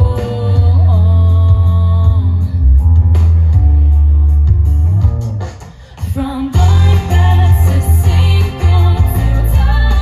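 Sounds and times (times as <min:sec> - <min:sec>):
heavy bass guitar: 0:00.0 - 0:10.0
indie pop band playing: 0:00.0 - 0:10.0.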